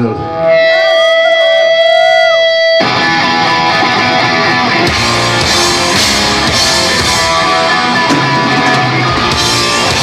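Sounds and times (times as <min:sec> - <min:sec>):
loud full band: 0:00.0 - 0:10.0.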